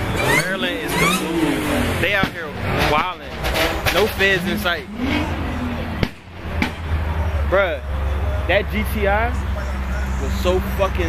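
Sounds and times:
car exhaust rumble: 0.0 - 11.0
sharp crack: 6.0 - 7.0.

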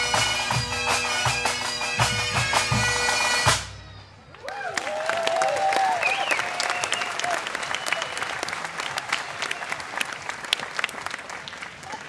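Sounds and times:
audience applauding: 4.3 - 12.0.

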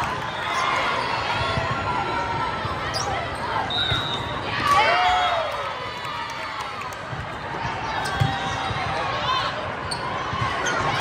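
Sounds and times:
sneaker squeak: 0.3 - 1.6, 2.8 - 4.4, 8.0 - 11.0.

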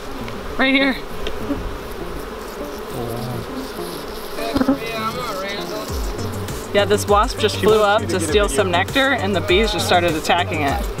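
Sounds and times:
honey bees buzzing: 0.0 - 11.0.

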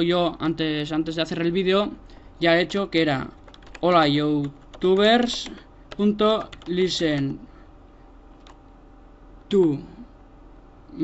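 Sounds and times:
keyboard typing clicks: 3.4 - 7.3, 8.4 - 8.6.

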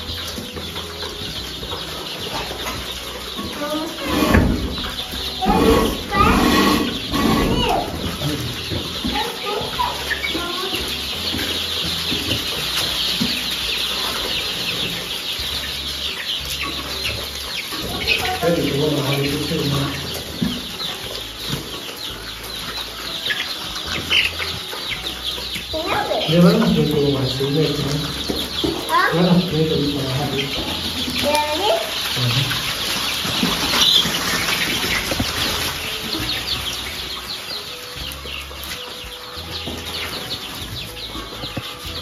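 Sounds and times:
chickens peeping and clucking: 0.0 - 42.0.

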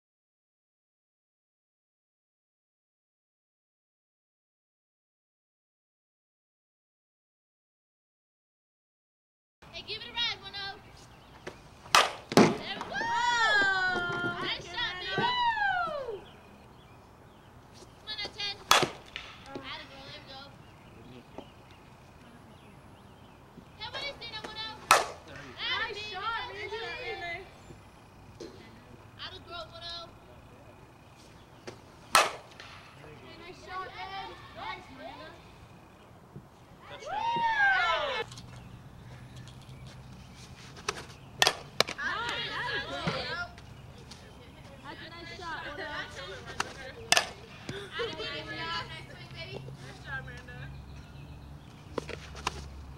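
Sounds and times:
bat striking ball: 11.4 - 14.5, 18.2 - 19.7, 24.4 - 25.9, 31.6 - 33.0, 40.9 - 42.4, 46.6 - 47.8.

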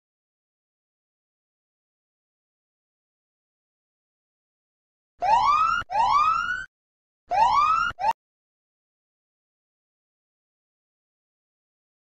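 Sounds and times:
electronic whooping alarm: 5.2 - 6.7, 7.3 - 8.2.

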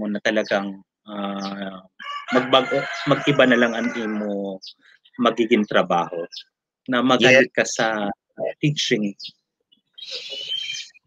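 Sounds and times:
man talking: 0.0 - 9.3
rooster crowing: 2.0 - 4.4.

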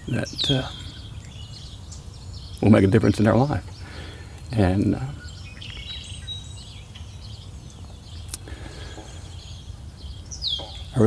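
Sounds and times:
bird trill: 0.0 - 11.0
small birds chirping: 0.0 - 11.0.

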